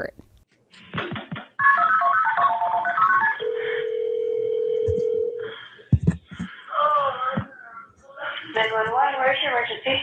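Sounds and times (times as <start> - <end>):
phone ringing tone: 1.6 - 5.6.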